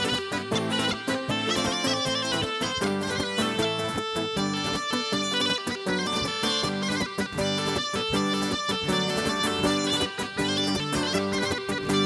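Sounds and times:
instrumental folk dance music: 0.0s - 12.0s.

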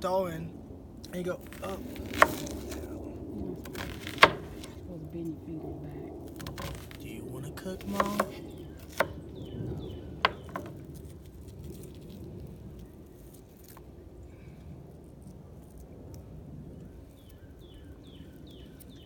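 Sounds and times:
knife slicing onion on board: 1.4s - 3.0s, 3.6s - 4.7s, 7.8s - 9.2s
knife knocking on board: 3.7s - 4.7s, 7.9s - 9.2s, 10.2s - 10.7s.

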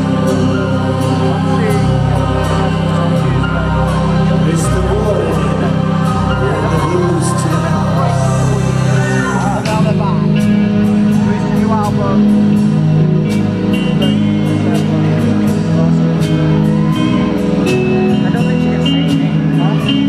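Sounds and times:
band playing slow jazz ballad: 0.0s - 20.0s.

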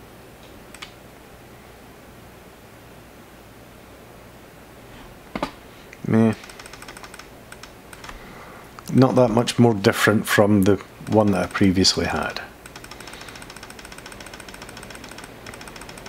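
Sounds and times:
low steady hum: 0.0s - 16.0s
computer mouse clicking: 0.7s - 1.0s, 6.4s - 8.2s, 11.0s - 11.8s, 12.6s - 16.0s.

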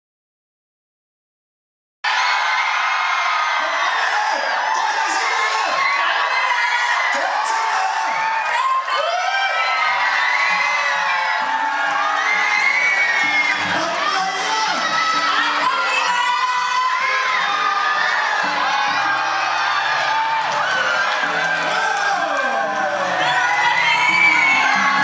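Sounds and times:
high-pitched whoops and shrieks: 2.1s - 25.0s
crowd chattering: 3.3s - 25.0s.

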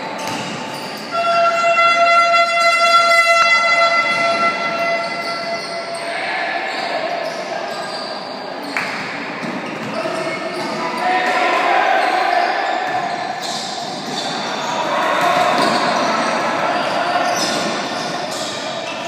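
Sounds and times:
horn-like tone: 1.1s - 6.0s
voices shouting: 10.0s - 19.0s.

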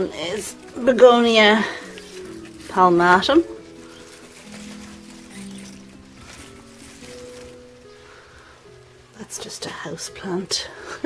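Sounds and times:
soft slow background music: 0.0s - 11.0s.

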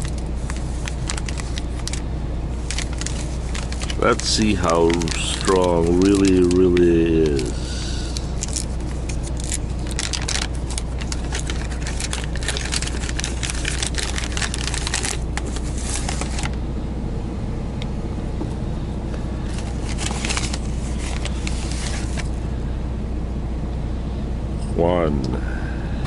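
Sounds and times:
foil bag crinkling: 0.0s - 16.6s, 19.4s - 22.4s
truck engine idling: 0.0s - 26.0s.

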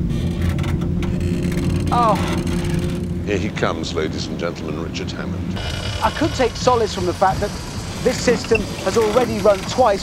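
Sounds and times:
engine droning: 0.0s - 10.0s.

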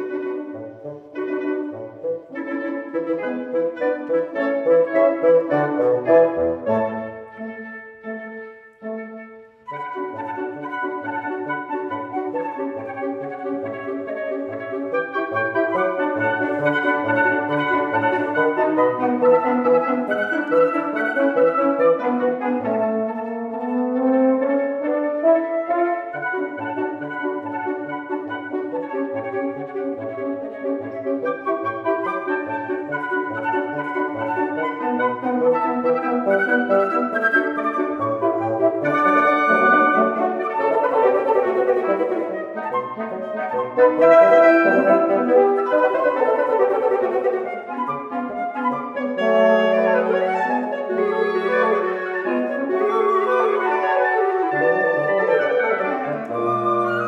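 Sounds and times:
woodwind quintet playing: 0.0s - 57.0s.

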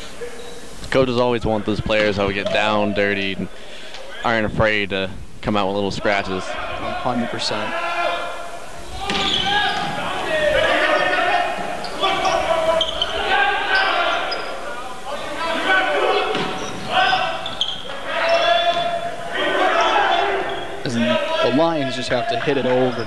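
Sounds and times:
indistinct voices: 0.0s - 23.0s
volleyball being struck: 9.0s - 10.0s.

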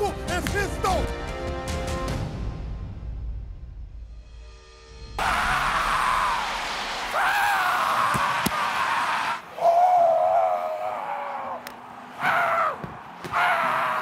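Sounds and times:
man screaming: 12.2s - 14.0s.

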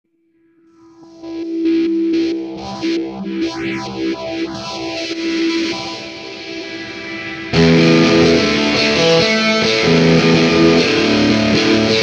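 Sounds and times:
distorted electric guitar: 0.7s - 12.0s
sweeping effect: 0.8s - 11.5s.

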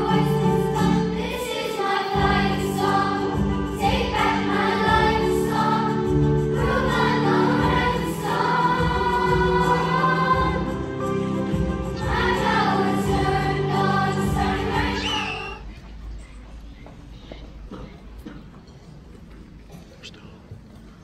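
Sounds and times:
choir singing: 0.0s - 15.6s.

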